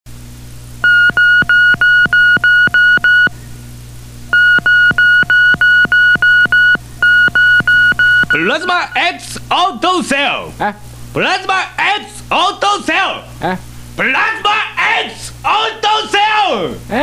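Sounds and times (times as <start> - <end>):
short high beeps: 0.8 - 3.3, 4.4 - 9.0.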